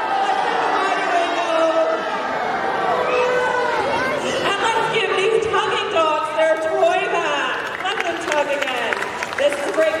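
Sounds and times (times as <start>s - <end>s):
audience chattering: 0.0s - 10.0s.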